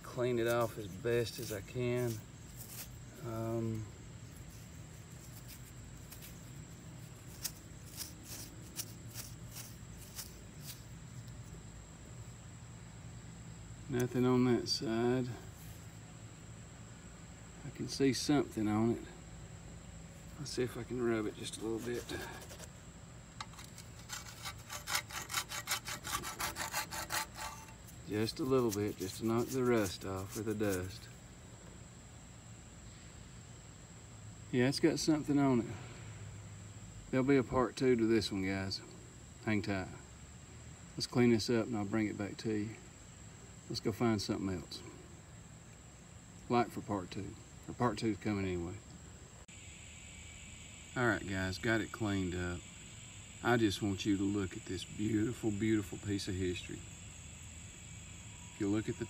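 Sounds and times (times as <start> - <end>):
thumb rubbing dirt off metal: 0.0 - 11.6, 20.4 - 22.8, 23.4 - 31.2
steady low hum: 0.0 - 58.8
steady hiss: 0.0 - 59.0
short scrapes: 0.2 - 3.6, 4.2 - 11.3, 21.4 - 22.8, 23.4 - 31.1.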